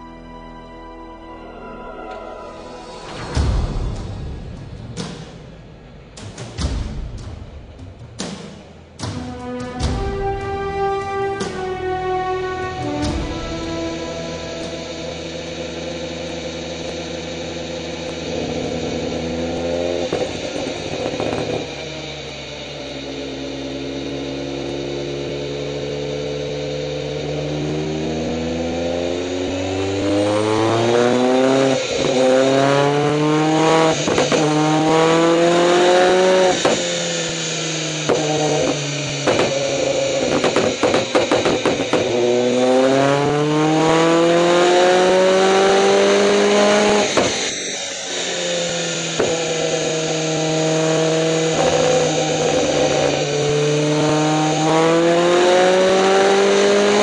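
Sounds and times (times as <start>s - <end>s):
turbocharged engine revving: 2.4s - 57.0s
anti-lag bangs and pops: 40.2s - 42.2s.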